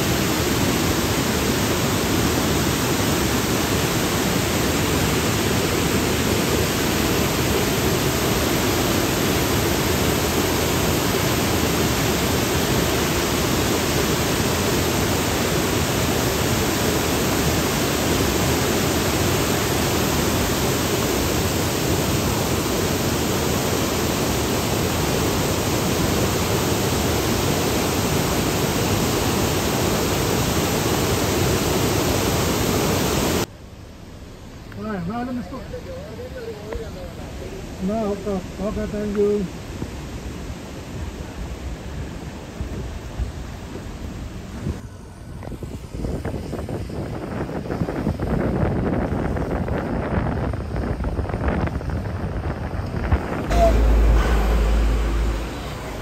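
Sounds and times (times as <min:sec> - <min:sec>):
waterfall rushing over rocks: 0:00.0 - 0:33.5.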